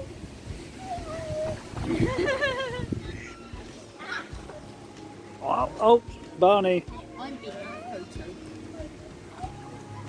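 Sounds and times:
high-pitched human laughter: 0:01.8 - 0:03.4.

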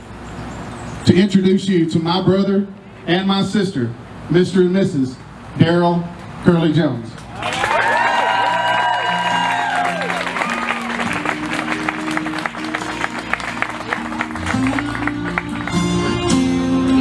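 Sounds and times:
whoops: 0:07.4 - 0:11.5
people clapping and cheering: 0:07.4 - 0:17.0
music with guitar: 0:10.7 - 0:17.0.

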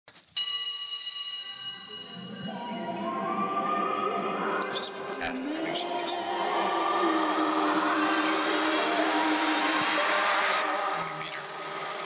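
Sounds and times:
bell-like chime: 0:00.3 - 0:03.1.

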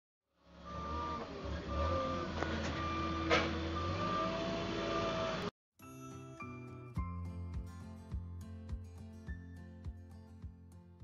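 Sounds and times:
forklift engine hum: 0:00.5 - 0:05.5
music: 0:05.8 - 0:11.0.

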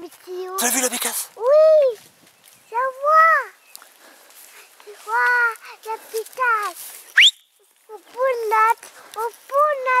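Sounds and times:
high-pitched voice speaking excitedly: 0:00.0 - 0:02.0, 0:02.7 - 0:03.5, 0:04.9 - 0:06.8, 0:07.9 - 0:10.0.

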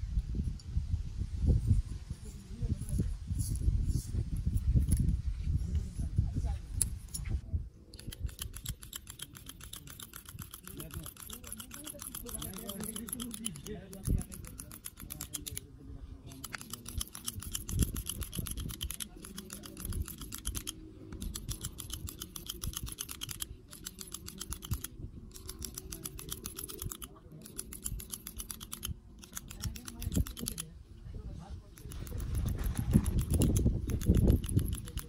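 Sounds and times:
hair clipper metallic clicks: 0:07.9 - 0:15.6, 0:16.3 - 0:30.7, 0:31.8 - 0:35.0.

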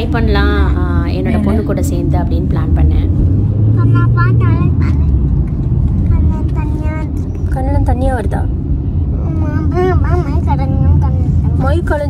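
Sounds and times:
high voice talking: 0:00.0 - 0:03.0.

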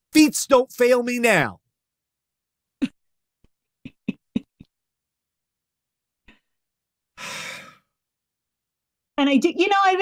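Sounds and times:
person sighing: 0:07.2 - 0:07.9.

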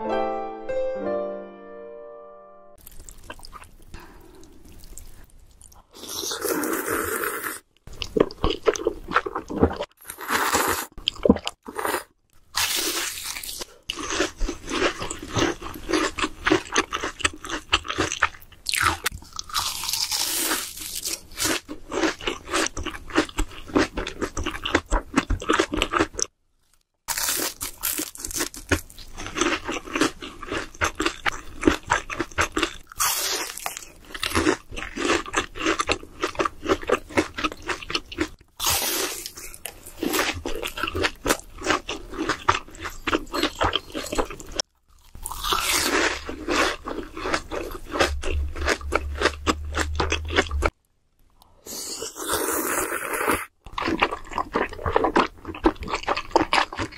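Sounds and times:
crunching and chewing food: 0:02.8 - 0:50.8, 0:51.4 - 0:56.9.

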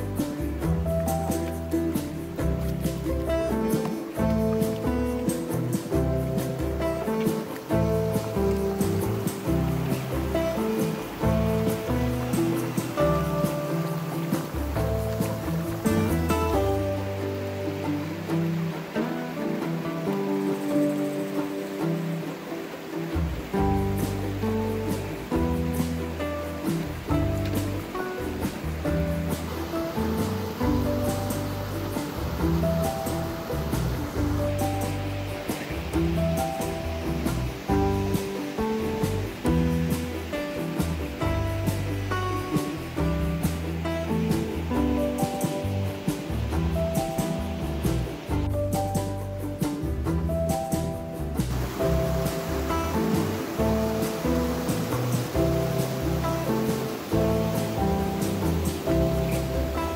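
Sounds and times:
instrumental background music: 0:00.0 - 0:59.9.

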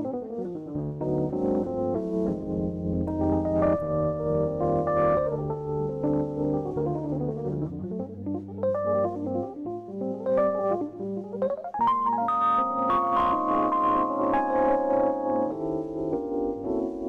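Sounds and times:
electric piano playing jazz: 0:00.0 - 0:17.0.

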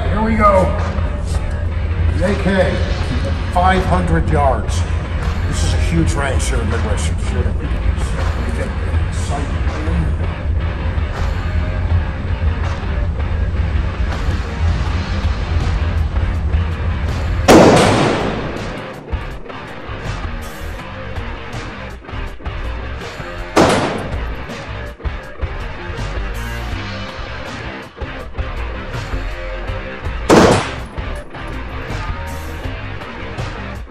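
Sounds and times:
background music: 0:00.0 - 0:33.9
rifle shots with reverb: 0:17.5 - 0:19.5, 0:23.6 - 0:24.4, 0:30.3 - 0:31.0.

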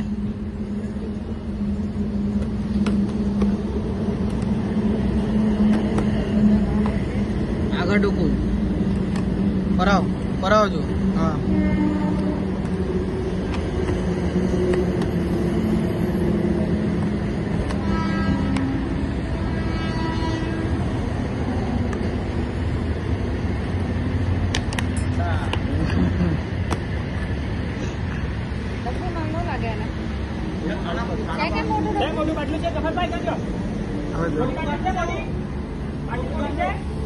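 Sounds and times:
road traffic rumble: 0:00.0 - 0:37.0.

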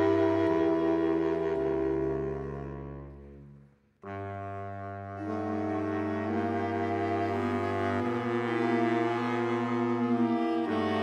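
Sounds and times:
saxophone quartet chords: 0:00.0 - 0:11.0.

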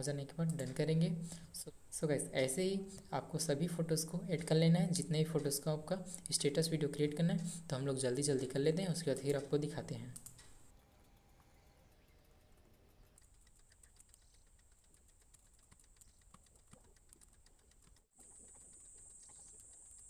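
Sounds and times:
faint background hiss: 0:00.0 - 0:13.1
faint ticks: 0:02.3 - 0:20.0
thin steady high tone: 0:10.7 - 0:14.6.

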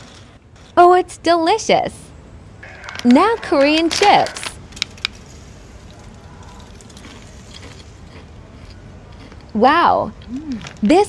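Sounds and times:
biting crunchy potato chip: 0:02.6 - 0:04.5, 0:05.8 - 0:09.5
chewing crisp crackles: 0:02.6 - 0:10.8.

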